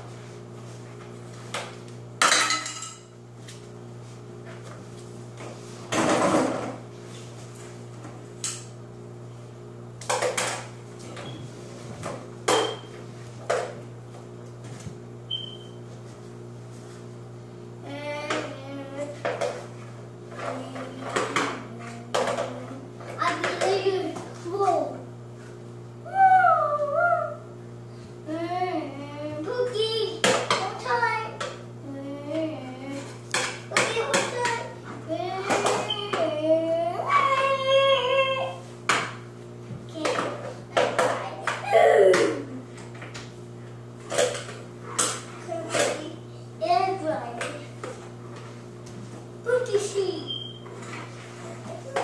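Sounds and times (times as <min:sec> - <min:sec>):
steady low hum: 0:00.0 - 0:52.0
child vocalizing: 0:26.0 - 0:27.5, 0:41.6 - 0:42.6.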